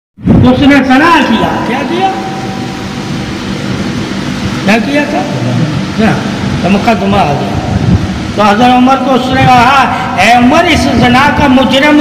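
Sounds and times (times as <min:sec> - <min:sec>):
steady rushing noise: 0:00.2 - 0:12.0.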